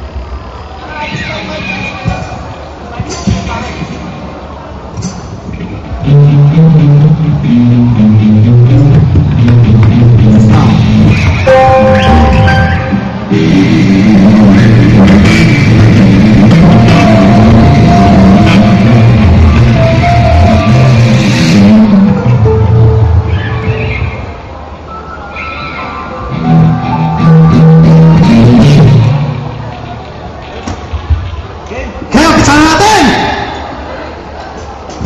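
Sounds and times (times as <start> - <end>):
electric guitar lead lines: 6.2 - 30.2
live rock band playing: 11.3 - 13.3.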